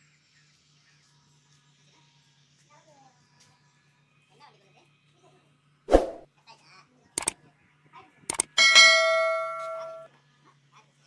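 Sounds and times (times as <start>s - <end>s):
ringing metal clang: 8.6s - 10.1s.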